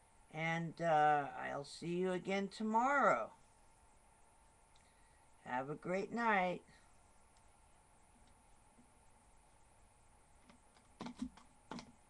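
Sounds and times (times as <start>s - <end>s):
computer keyboard keystrokes: 10.8s - 11.9s.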